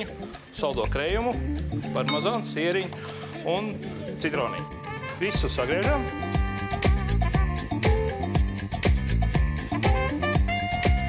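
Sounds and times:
man speaking: 0.0s - 6.2s
background music: 0.0s - 11.0s.

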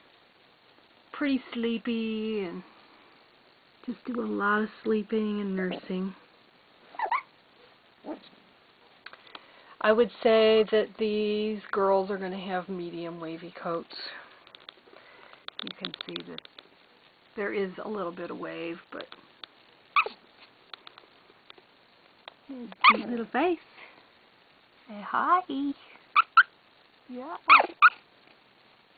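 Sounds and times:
puppy whimpering: 6.9s - 7.3s, 20.0s - 20.2s, 22.7s - 23.1s, 26.2s - 26.5s, 27.5s - 28.0s.

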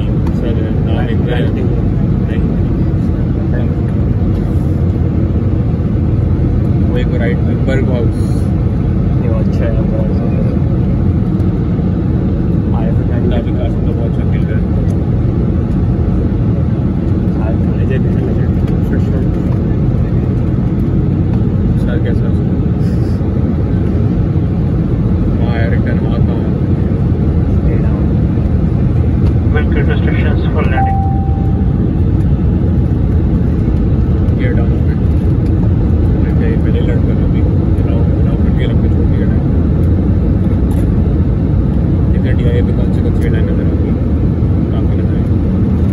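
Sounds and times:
jet engines and airflow rushing: 0.0s - 45.9s
single tone: 30.7s - 31.8s.

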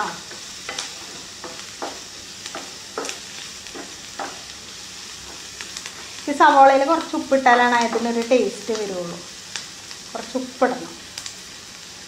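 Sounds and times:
onions sizzling in a frying pan: 0.0s - 12.0s
spatula scraping a pan: 0.2s - 4.5s.

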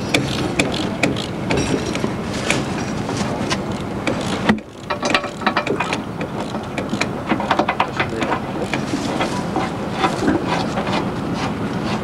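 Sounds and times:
sharp mechanical clicks and knocks: 0.0s - 11.1s.

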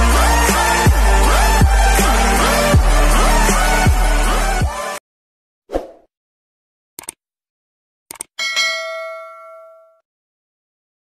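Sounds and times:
mouse double click: 8.1s - 8.3s
notification bell chime: 8.4s - 10.0s.

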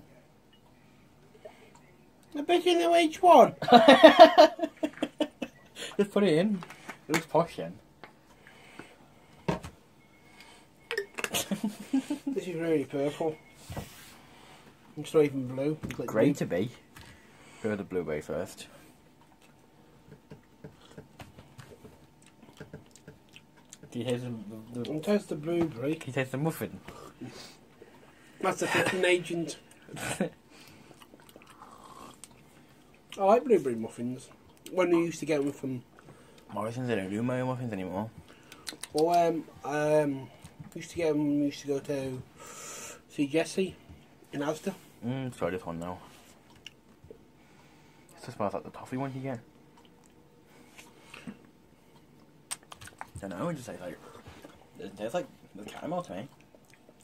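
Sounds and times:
mouth smacks and swallows: 38.2s - 39.1s, 52.0s - 53.2s.

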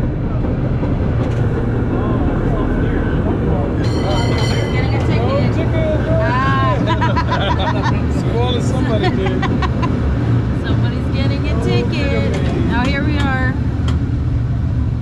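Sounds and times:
cable car rumbling on track: 0.0s - 15.0s
people talking: 1.5s - 9.9s, 10.6s - 13.6s.

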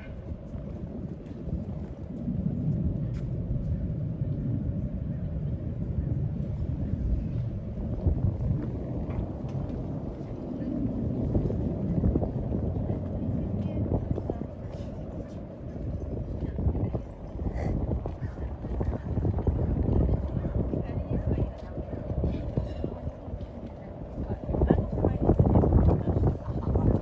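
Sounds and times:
faint voices of passers-by: 0.0s - 27.0s
wind on microphone: 0.0s - 27.0s.

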